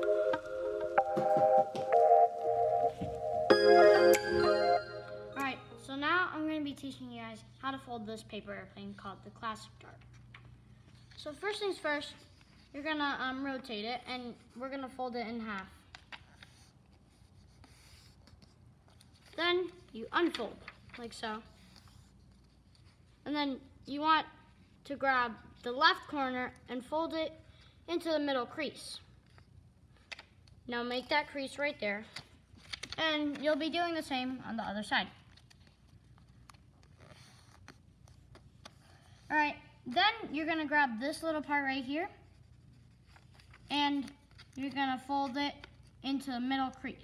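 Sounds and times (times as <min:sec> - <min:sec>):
paper rubbing: 0:42.2 - 0:44.6.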